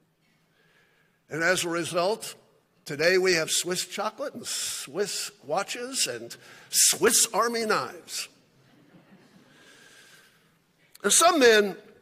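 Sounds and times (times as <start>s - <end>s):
faint breath drawn in: 0.2s - 1.3s, 9.4s - 10.6s.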